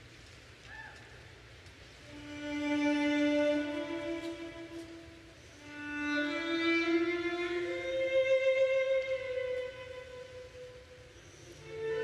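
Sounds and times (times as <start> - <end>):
violin playing slow music: 2.0 - 12.0.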